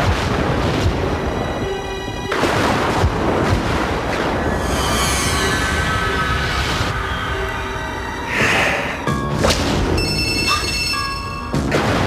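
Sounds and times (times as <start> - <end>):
dark horror trailer music: 0.0 - 12.0
hissing rush: 4.3 - 9.0.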